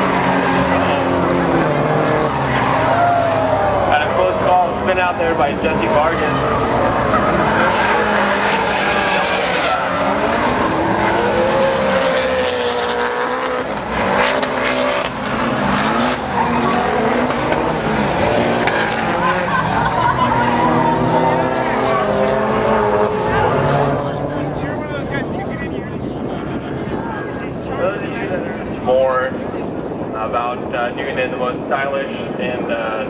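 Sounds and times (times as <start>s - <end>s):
car engines revving hard: 0.0s - 33.0s
tyres squealing: 6.4s - 18.1s.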